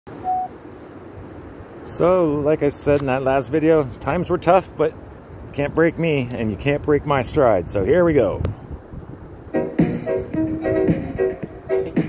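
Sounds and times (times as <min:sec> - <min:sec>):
short electronic beep: 0:00.2 - 0:00.5.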